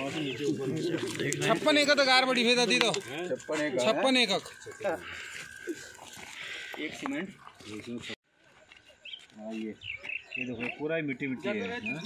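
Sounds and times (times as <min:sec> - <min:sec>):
people's voices: 0:00.0 - 0:08.2.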